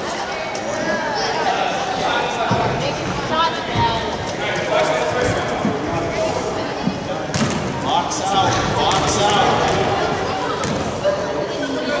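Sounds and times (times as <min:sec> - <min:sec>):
people talking: 0:00.0 - 0:12.0
basketball bouncing on gym floor: 0:07.3 - 0:07.8.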